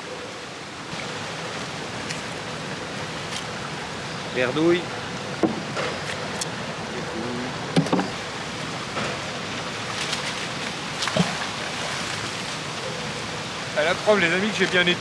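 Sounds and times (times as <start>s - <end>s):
fast-flowing river rushing: 0.0s - 15.0s.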